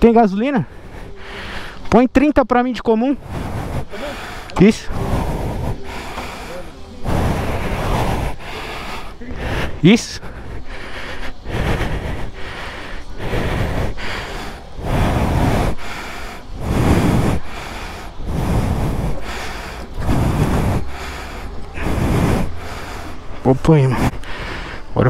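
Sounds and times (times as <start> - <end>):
person breathing heavily: 0.4 - 1.9, 3.1 - 25.0.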